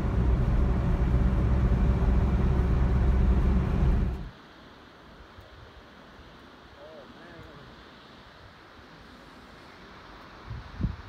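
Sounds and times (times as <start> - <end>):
car road and engine rumble: 0.0 - 4.5.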